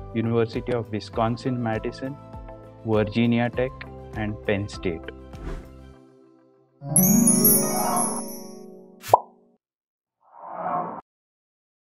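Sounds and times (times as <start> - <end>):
bright chord with chime tones: 6.8 - 9.0
short pop with upward blip: 9.0 - 9.3.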